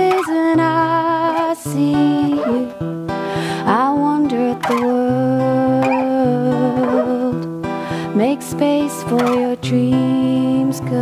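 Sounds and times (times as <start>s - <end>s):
acoustic guitar strumming: 0.0s - 11.0s
woman singing wordlessly: 0.0s - 11.0s.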